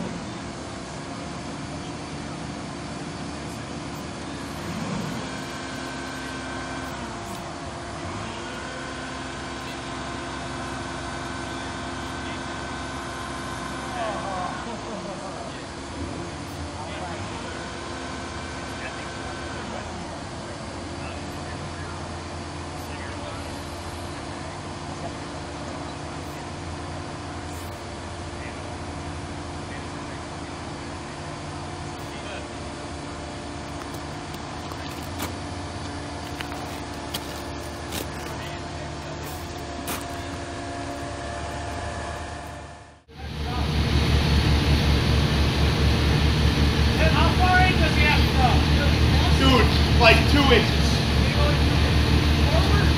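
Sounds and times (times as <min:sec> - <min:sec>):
fire truck engine humming: 0:00.0 - 0:52.9.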